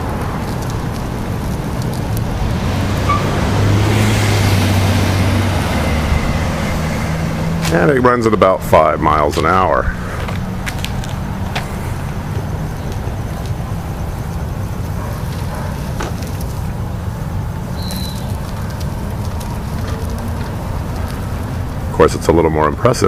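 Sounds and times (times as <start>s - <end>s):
wheels rolling on asphalt: 0.0s - 23.0s
wheelchair motors rumbling: 4.4s - 22.5s.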